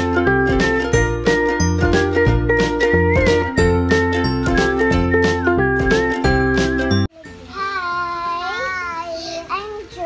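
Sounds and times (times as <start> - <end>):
children's sing-song calling: 7.2 - 10.0.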